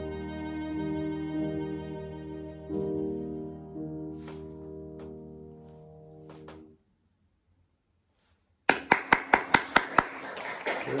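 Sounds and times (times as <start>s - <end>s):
violin and piano chord: 0.0s - 5.1s
audience applause: 8.7s - 11.0s.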